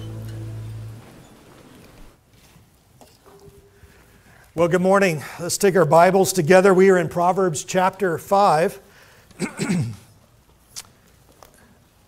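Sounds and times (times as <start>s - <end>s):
man speaking: 4.6s - 8.8s.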